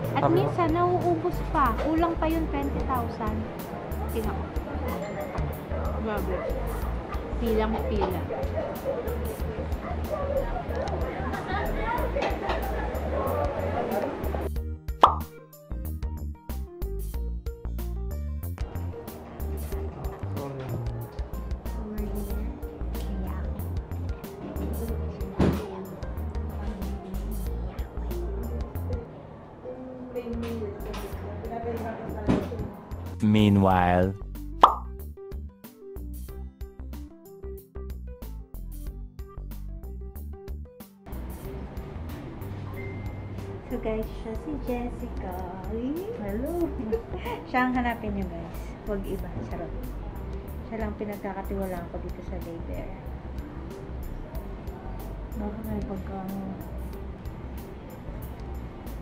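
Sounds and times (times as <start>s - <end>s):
chattering voices: 0.0s - 14.5s, 18.6s - 34.1s
background music with steady beat: 0.0s - 29.0s, 30.2s - 59.0s
loud plop with falling pitch: 15.0s - 15.3s, 34.6s - 34.9s.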